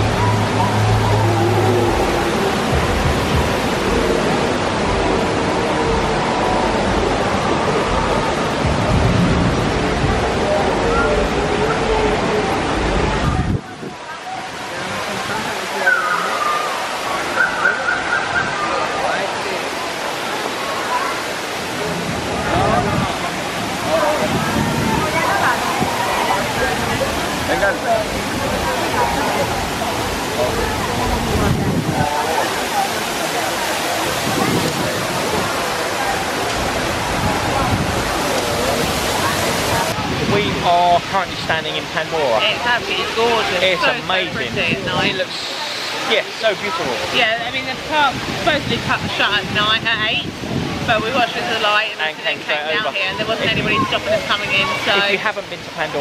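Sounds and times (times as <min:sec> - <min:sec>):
faint voices talking: 0:00.0 - 0:56.0
indistinct chatter: 0:00.0 - 0:56.0
water rushing: 0:00.0 - 0:56.0.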